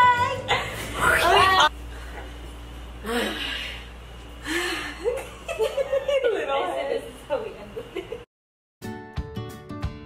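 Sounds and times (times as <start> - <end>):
women laughing: 4.5 - 8.3.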